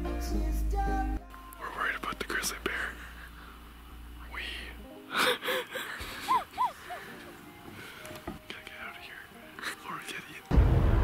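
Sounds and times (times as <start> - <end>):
hushed whispering voices: 1.6 - 3.2, 4.2 - 4.8, 8.5 - 10.5.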